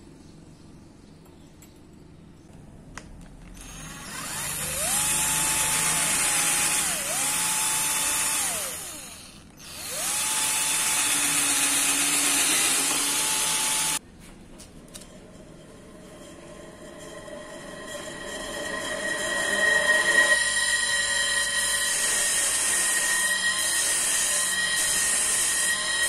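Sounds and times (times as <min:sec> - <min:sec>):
electric drill boring through steel: 0:03.6 - 0:14.0, 0:17.4 - 0:26.0.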